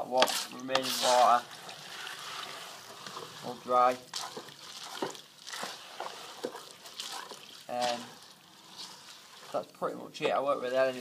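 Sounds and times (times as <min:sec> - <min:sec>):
wet bait mix being stirred: 0:00.0 - 0:11.0.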